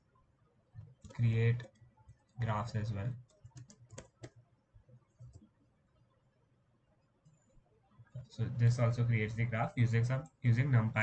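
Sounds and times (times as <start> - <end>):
computer keyboard typing: 0.8 - 4.4, 5.1 - 5.5.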